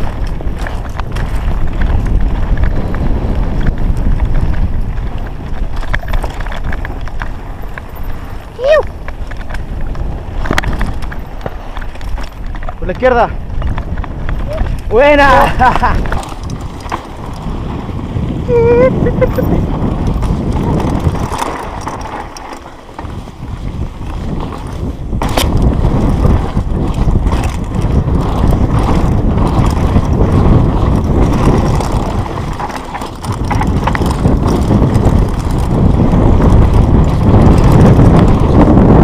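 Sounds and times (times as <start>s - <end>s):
bike tyres rattling on loose ground: 0.0s - 39.0s
wind buffeting microphone: 0.0s - 39.0s.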